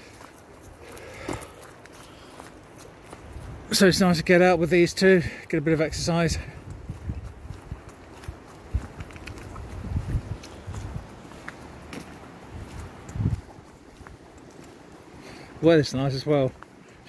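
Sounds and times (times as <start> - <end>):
footsteps on gravel: 0.0 - 17.0
wind buffeting microphone: 3.0 - 15.0.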